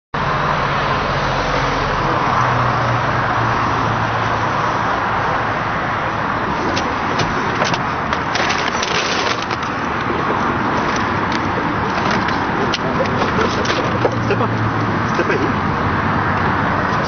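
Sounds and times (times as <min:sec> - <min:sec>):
road traffic engine hum: 0:00.2 - 0:17.0.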